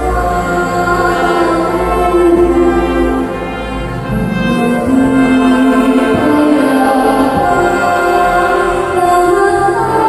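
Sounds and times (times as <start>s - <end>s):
choir singing with orchestra: 0.0s - 10.0s.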